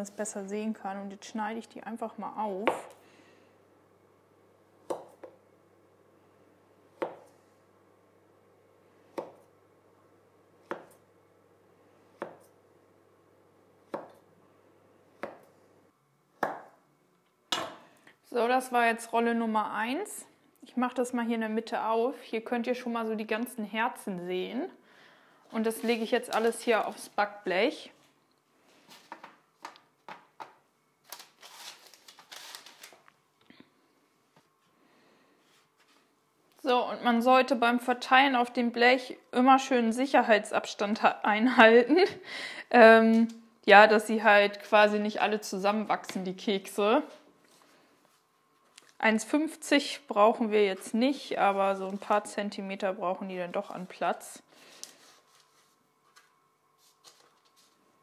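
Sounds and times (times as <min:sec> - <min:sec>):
knife slicing cookie dough: 0:12.2 - 0:12.6
baking paper rustling: 0:25.5 - 0:27.4, 0:31.0 - 0:33.1, 0:50.7 - 0:52.4, 0:53.4 - 0:58.0.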